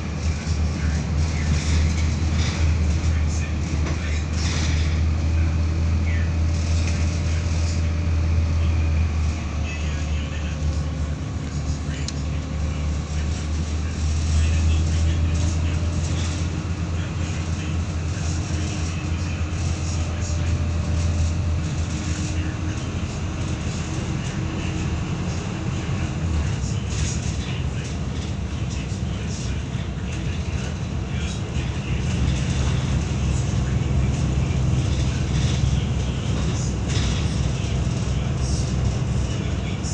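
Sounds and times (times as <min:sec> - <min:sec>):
bus diesel engine droning: 0:00.0 - 0:39.9
road noise: 0:00.0 - 0:39.9.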